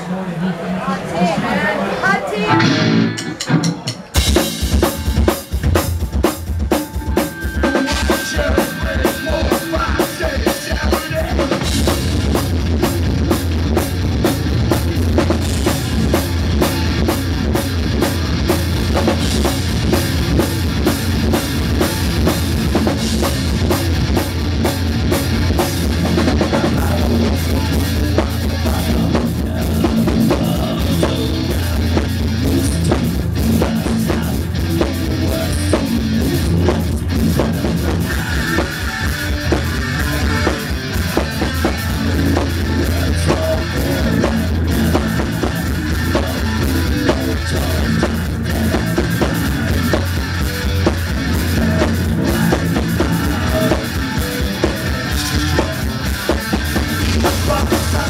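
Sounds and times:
electric guitar: 2.0 - 58.0
drum kit: 2.5 - 58.0
electric bass: 2.5 - 58.0.

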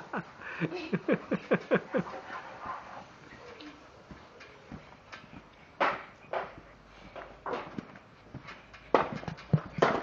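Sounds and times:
feet landing on trampoline mat: 4.1 - 10.0.

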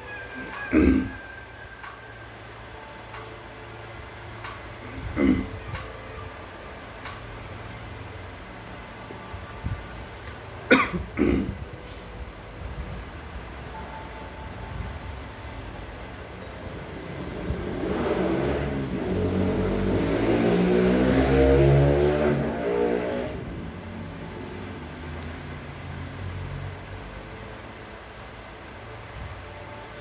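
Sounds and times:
low background noise: 0.0 - 30.0
motor vehicle passing by: 17.0 - 27.1.

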